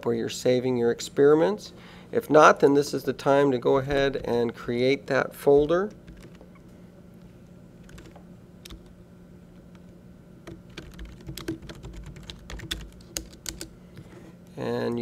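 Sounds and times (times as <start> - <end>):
faint steady hum: 0.0 - 15.0
typing on computer keyboard: 10.4 - 13.7.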